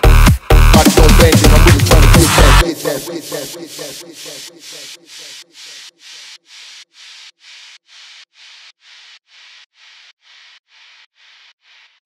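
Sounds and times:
hissing noise swells: 2.6 - 12.0.

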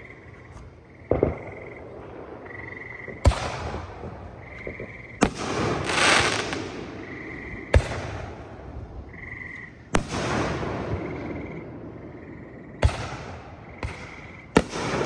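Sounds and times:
fireworks bangs: 1.1 - 8.6, 10.0 - 11.4, 12.8 - 15.0
fireworks crackling: 3.1 - 7.0.

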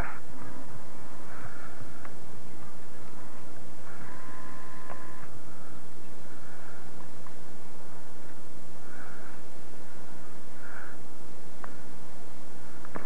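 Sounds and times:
tape hiss and low hum: 0.0 - 13.0.

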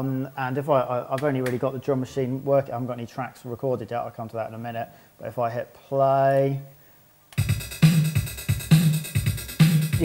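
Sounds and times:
drum machine beat: 7.4 - 10.0.

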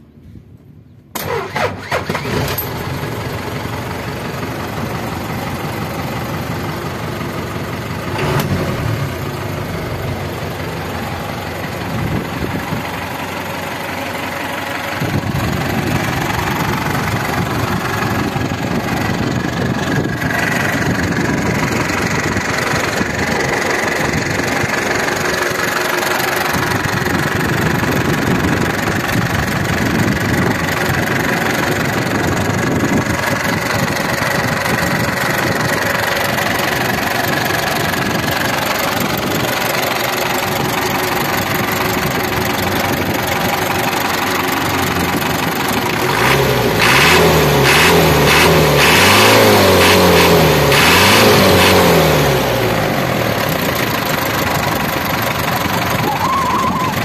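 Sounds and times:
diesel engine idling: 0.1 - 57.0
diesel engine revving: 1.1 - 57.0.

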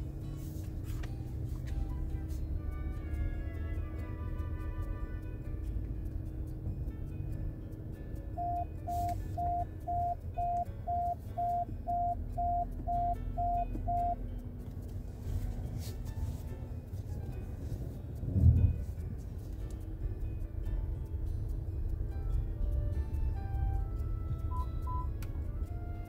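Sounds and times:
parking sensor beeping: 8.4 - 14.2, 24.4 - 25.2.

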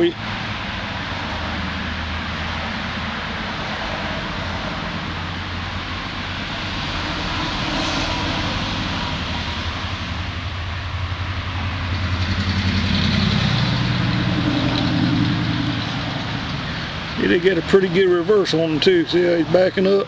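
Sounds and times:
engine humming: 0.0 - 20.0.

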